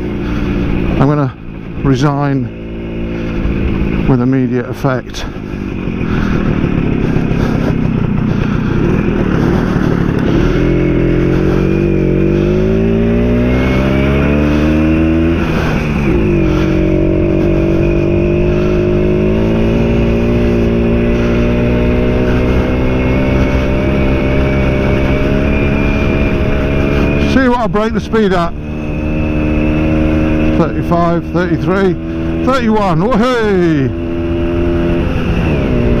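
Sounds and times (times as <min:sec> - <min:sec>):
motorcycle two-stroke engine: 0:00.0 - 0:36.0.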